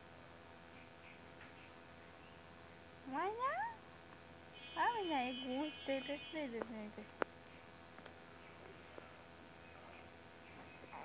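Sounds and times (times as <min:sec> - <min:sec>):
woman baby talking: 0:03.1 - 0:03.8, 0:04.8 - 0:07.1.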